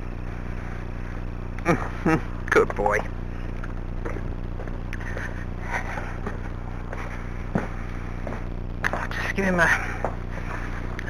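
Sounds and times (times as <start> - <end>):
low hum: 0.0 - 11.0
footsteps: 3.5 - 11.0.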